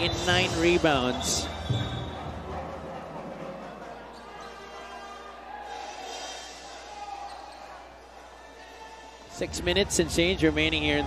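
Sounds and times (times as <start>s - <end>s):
indoor crowd murmur: 0.9s - 9.4s.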